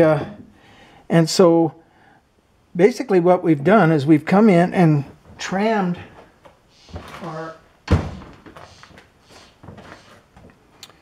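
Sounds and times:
dull thunk: 7.9 - 8.4.

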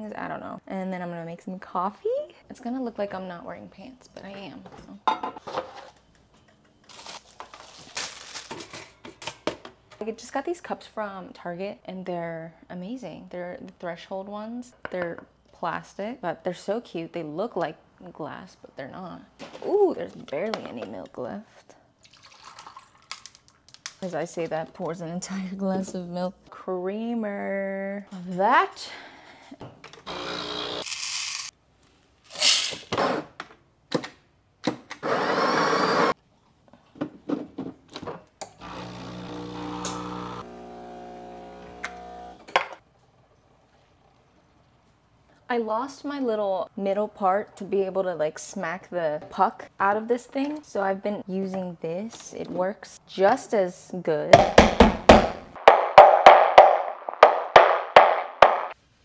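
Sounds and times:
espresso pump hum: 30.1 - 30.8, 38.6 - 42.4
coffee grinding: 38.6 - 42.4.

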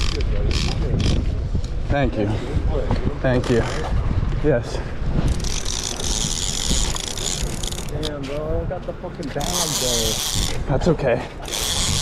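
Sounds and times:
wind rumbling on microphone: 0.0 - 12.0
fishing reel drag buzzing: 5.3 - 8.1, 9.4 - 10.6, 11.4 - 12.0.

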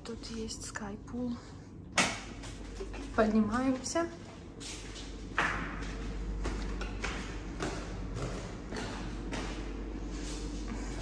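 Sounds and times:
low steady hum: 0.0 - 11.0
footsteps on tiled stairs: 2.4 - 11.0.

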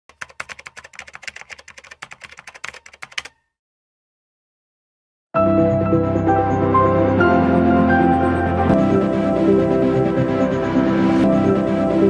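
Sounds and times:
keyboard typing clicks: 0.1 - 3.4.

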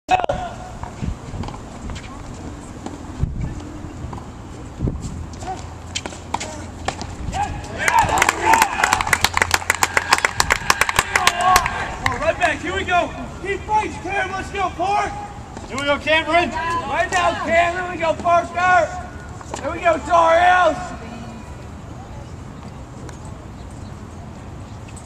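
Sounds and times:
spectators clapping and shouting: 7.7 - 12.6.

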